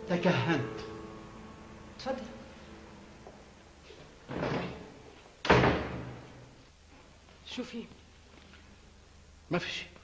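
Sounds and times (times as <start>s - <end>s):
door slamming shut: 4.3s - 6.5s.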